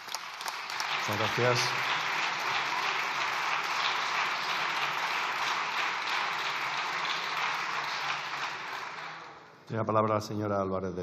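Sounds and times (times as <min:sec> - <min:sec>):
crowd applauding: 0:00.0 - 0:09.6.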